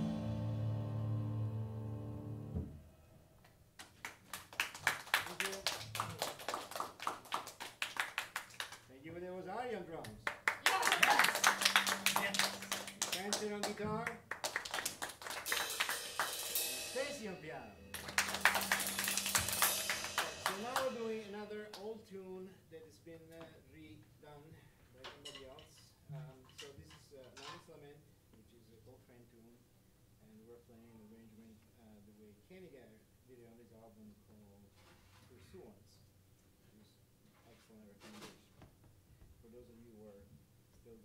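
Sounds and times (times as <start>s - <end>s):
jazz tune: 0.0s - 2.8s, 10.6s - 14.4s, 15.1s - 21.5s
audience applauding: 3.8s - 8.9s, 10.3s - 16.5s, 17.9s - 21.0s
voices: 10.7s - 14.1s.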